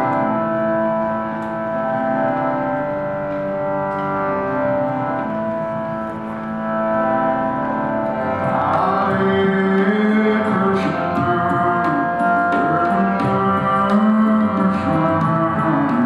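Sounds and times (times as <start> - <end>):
harmonium chords: 0.0 - 16.0
man chanting: 8.2 - 16.0.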